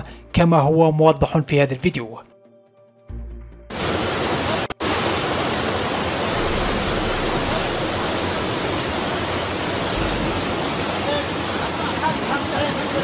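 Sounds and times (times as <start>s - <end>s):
floodwater rushing: 3.7s - 13.0s.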